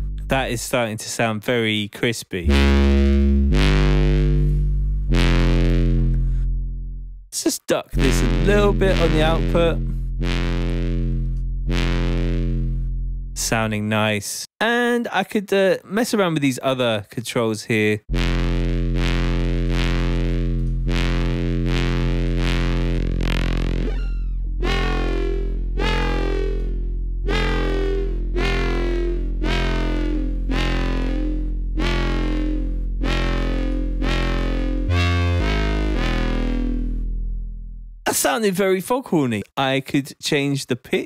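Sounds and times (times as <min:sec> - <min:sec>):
distorted synth bass note: 0:00.0 - 0:00.9, 0:02.4 - 0:07.3, 0:07.9 - 0:14.1, 0:18.0 - 0:38.0.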